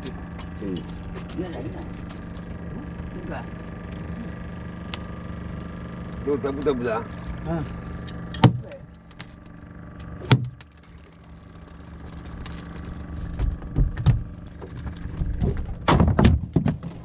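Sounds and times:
boat engine humming: 0:00.0 - 0:17.0.

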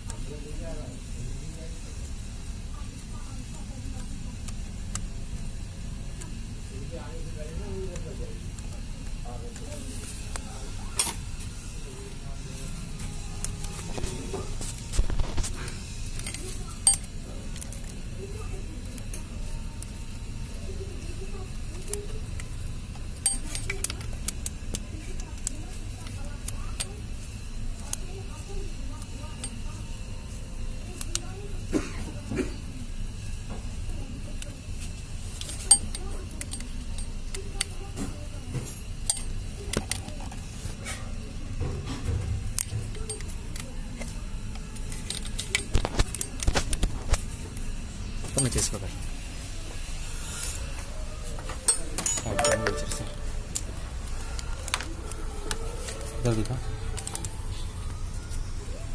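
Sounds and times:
faint voices: 0:00.0 - 0:58.9
steady low hum: 0:00.0 - 0:58.9
metallic clinks of hand tools: 0:23.2 - 0:23.9, 0:51.7 - 0:53.2.

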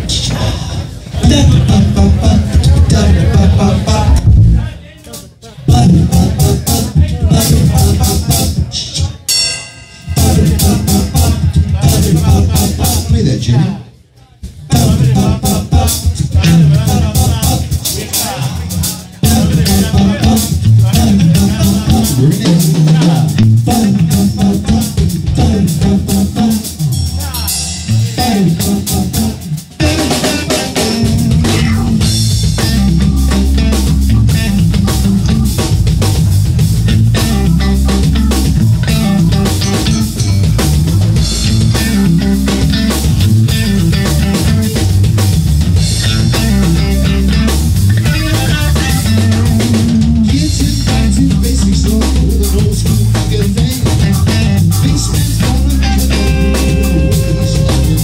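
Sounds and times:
live rock band playing: 0:00.0 - 0:04.8, 0:05.6 - 0:13.4, 0:14.4 - 0:58.0.

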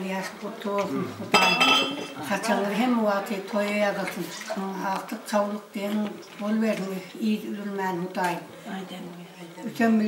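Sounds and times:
woman speaking: 0:02.2 - 0:10.0.

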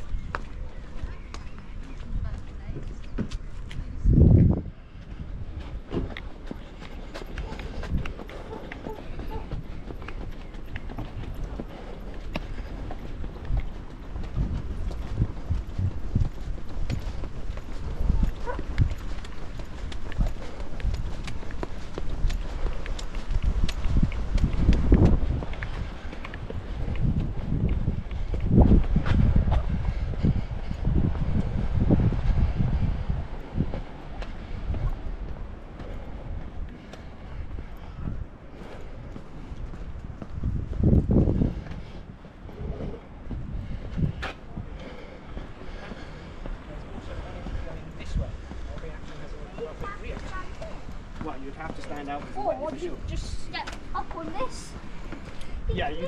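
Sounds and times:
footsteps on tarmac: 0:00.0 - 0:56.0
wind rumble on microphone: 0:00.0 - 0:56.0.

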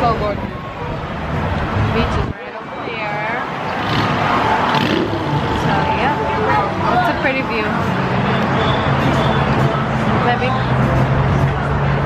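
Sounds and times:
people talking: 0:00.0 - 0:01.0, 0:01.9 - 0:03.5, 0:05.6 - 0:11.5
cars passing on busy road: 0:00.0 - 0:12.0.

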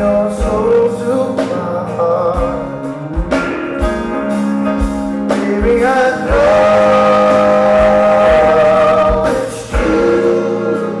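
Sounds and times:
man singing: 0:00.0 - 0:03.4, 0:05.3 - 0:11.0
acoustic guitar chords: 0:00.0 - 0:11.0.

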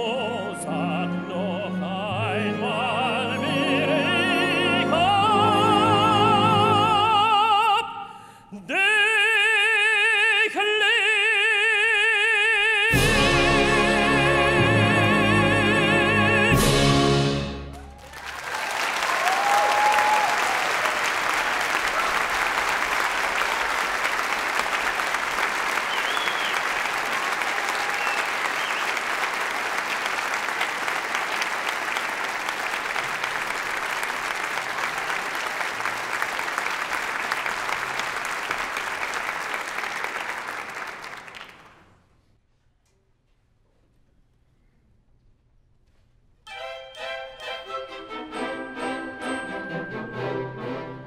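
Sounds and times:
orchestra and tenor singing: 0:00.0 - 0:17.7, 0:46.5 - 0:51.0
audience cheering: 0:17.7 - 0:41.4
audience applauding: 0:17.7 - 0:41.9.

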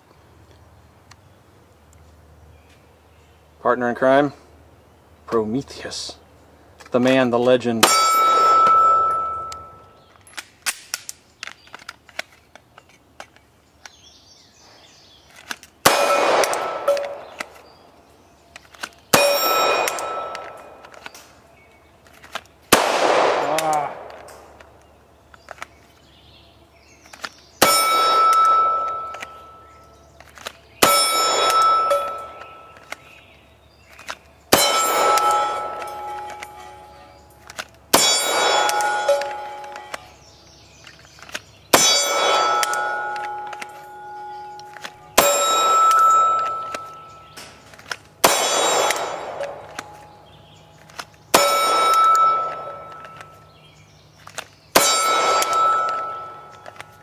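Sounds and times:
steel plate target ringing: 0:07.8 - 0:09.9, 0:19.2 - 0:20.8, 0:27.6 - 0:29.8, 0:30.8 - 0:32.8, 0:34.5 - 0:39.9, 0:41.7 - 0:47.6, 0:48.2 - 0:50.2, 0:51.3 - 0:53.5, 0:54.8 - 0:56.6
pistol shots: 0:07.8 - 0:11.1, 0:15.8 - 0:17.7, 0:19.1 - 0:21.3, 0:22.6 - 0:24.7, 0:27.6 - 0:29.7, 0:30.8 - 0:33.0, 0:34.5 - 0:40.1, 0:41.7 - 0:53.5, 0:54.7 - 0:57.0.

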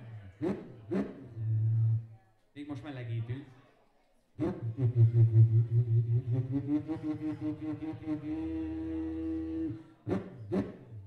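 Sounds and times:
beatboxing bass buzz: 0:04.4 - 0:11.0
hummed tone: 0:04.7 - 0:09.8.

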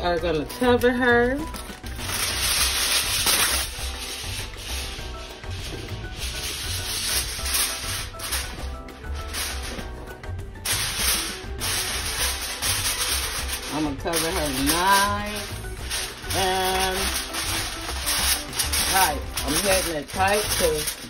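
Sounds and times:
aluminium foil crinkling: 0:00.0 - 0:21.0.

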